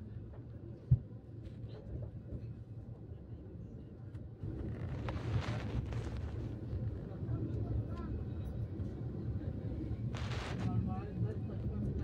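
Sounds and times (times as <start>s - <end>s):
train rumble inside coach: 0.0s - 12.0s.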